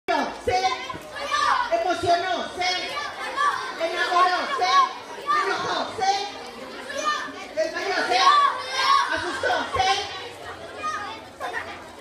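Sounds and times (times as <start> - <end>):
children chattering and calling out: 0.1 - 12.0.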